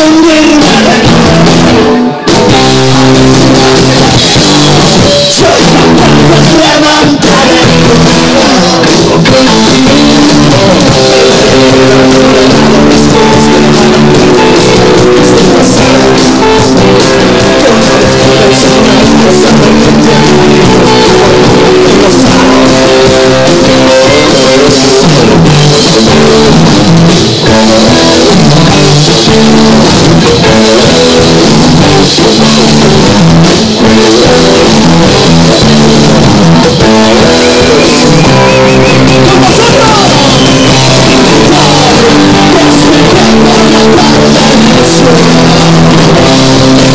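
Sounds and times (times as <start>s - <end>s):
bass guitar: 0.0s - 46.9s
drum kit: 0.0s - 46.9s
electric guitars: 0.0s - 46.9s.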